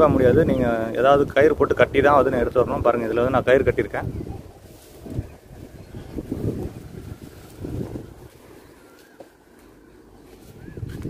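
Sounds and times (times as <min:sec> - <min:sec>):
wind buffeting microphone: 0:00.0 - 0:09.0, 0:10.1 - 0:11.0.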